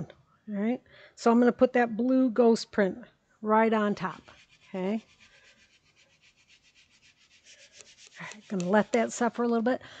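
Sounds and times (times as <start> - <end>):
hand rubbing over fabric: 4.0 - 9.5.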